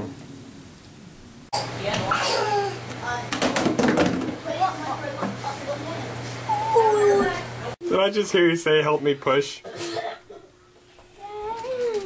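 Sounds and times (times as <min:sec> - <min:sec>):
child whining: 0:02.1 - 0:02.8, 0:06.5 - 0:07.5, 0:11.1 - 0:12.0.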